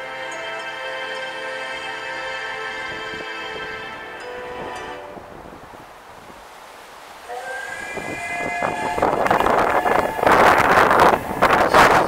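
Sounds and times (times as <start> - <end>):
light-show music: 0.0 - 5.5
steam locomotive whistle over loudspeakers: 7.3 - 12.0.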